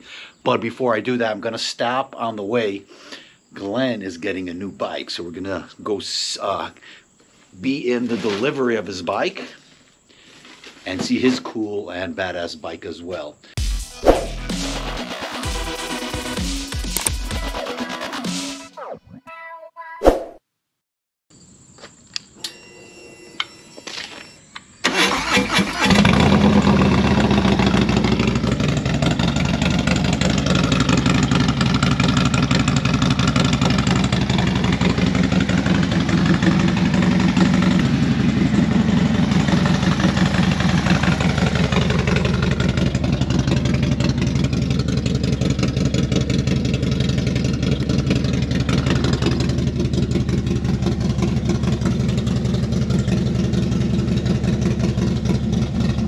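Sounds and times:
motorcycle engine starting and idling: 0:24.8 - 0:56.0.

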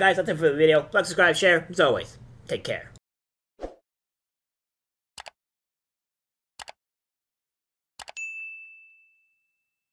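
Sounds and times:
bright bell ding: 0:08.2 - 0:09.9.

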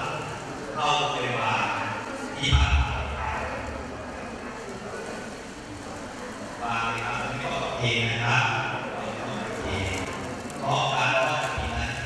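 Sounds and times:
man speaking: 0:00.0 - 0:03.7, 0:06.6 - 0:12.0
murmur of background voices: 0:00.0 - 0:12.0.

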